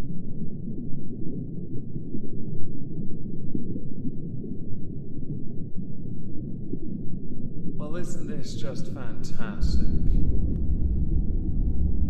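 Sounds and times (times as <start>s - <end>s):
man speaking: 7.8s - 10.2s
low muffled rumbling drone: 7.8s - 12.0s.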